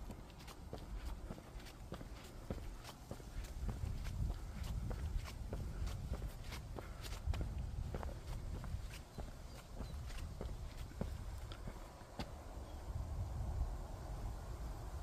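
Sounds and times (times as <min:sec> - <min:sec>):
footsteps on trail: 0:00.0 - 0:12.5.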